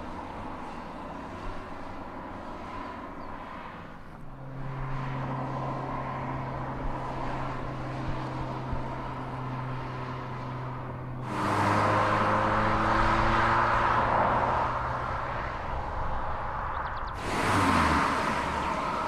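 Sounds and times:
road noise: 0.0s - 19.0s.

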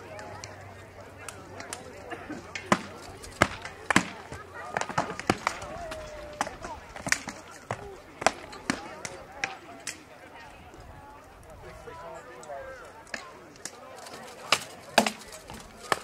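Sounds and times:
spectators murmuring: 0.0s - 16.0s.

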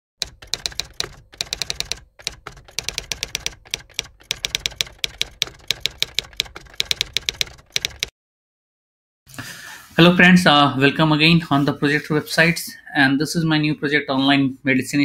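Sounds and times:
typewriter keys clacking: 0.2s - 8.1s.

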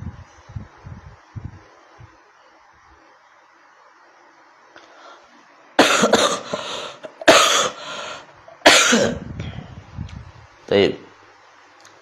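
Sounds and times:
man coughing loudly: 5.8s - 7.8s, 8.6s - 9.2s.

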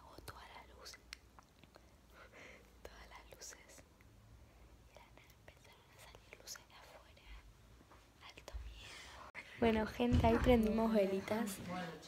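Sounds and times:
faint whispering: 0.0s - 4.0s, 4.8s - 7.5s, 8.1s - 9.6s.

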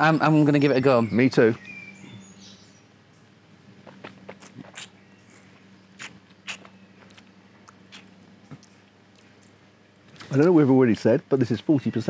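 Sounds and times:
lip smacks and tongue clicks: 3.8s - 9.6s.

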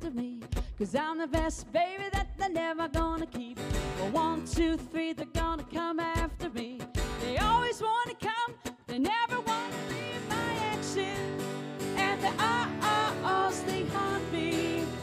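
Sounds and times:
woman singing wordless phrases: 0.0s - 15.0s
acoustic guitar strumming: 0.5s - 15.0s.

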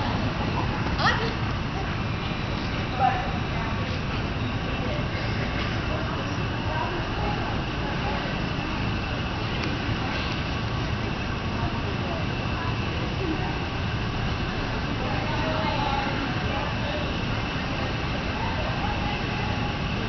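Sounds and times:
distant voices: 0.0s - 20.0s
indoor arena hum and murmur: 0.0s - 20.0s.

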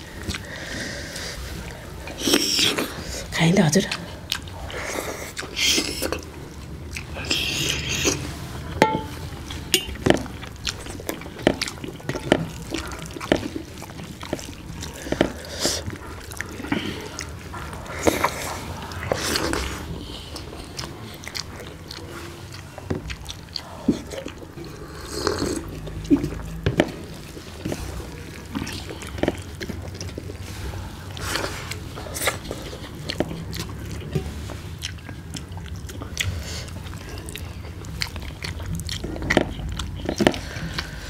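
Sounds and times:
people chewing and lip smacking: 0.0s - 41.0s.

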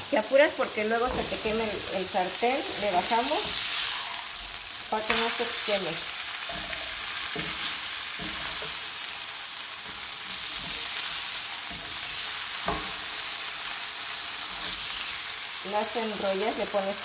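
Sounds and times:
tortilla sizzling in hot oil: 0.0s - 17.0s.

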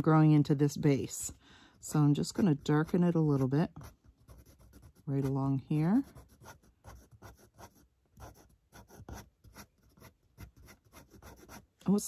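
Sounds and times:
pen scratching on paper: 1.9s - 11.7s.

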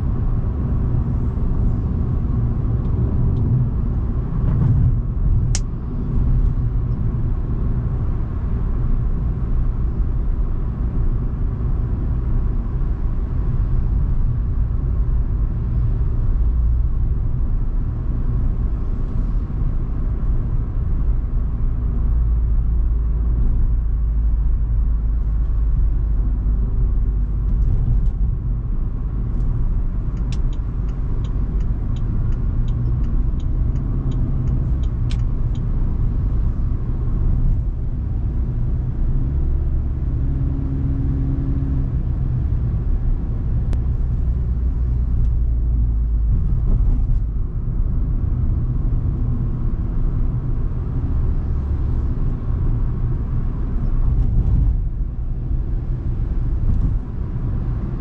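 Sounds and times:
car engine and road rumble: 0.0s - 58.0s.

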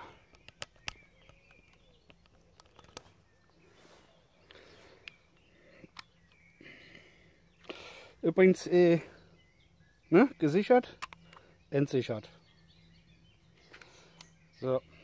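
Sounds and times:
faint short clicks: 4.4s - 6.4s.

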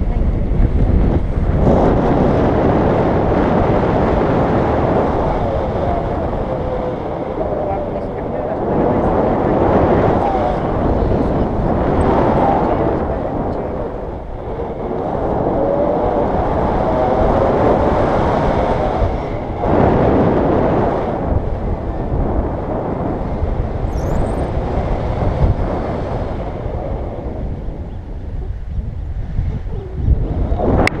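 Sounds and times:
wind rushing over microphone: 0.0s - 31.0s.

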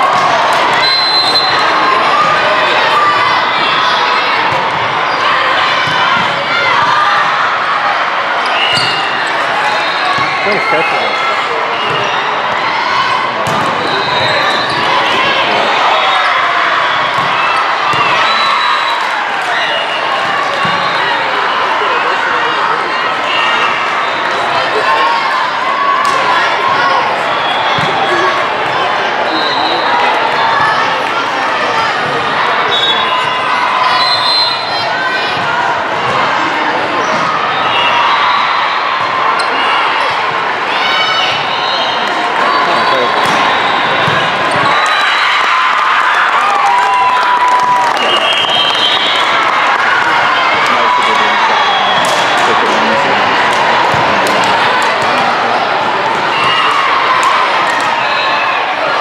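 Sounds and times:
many voices calling and talking: 0.0s - 59.0s
volleyballs struck and bouncing: 13.4s - 15.6s, 43.1s - 44.8s, 53.5s - 55.4s.

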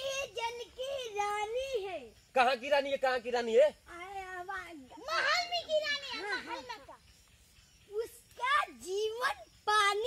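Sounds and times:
children making high wavering sounds: 0.0s - 2.2s, 4.0s - 10.0s.

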